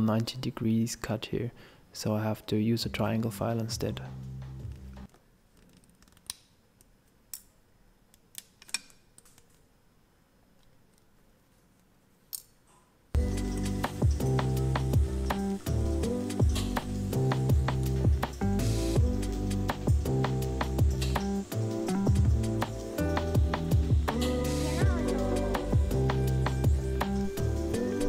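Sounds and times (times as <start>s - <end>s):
background music with steady beat: 2.9s - 5.1s, 13.2s - 28.0s.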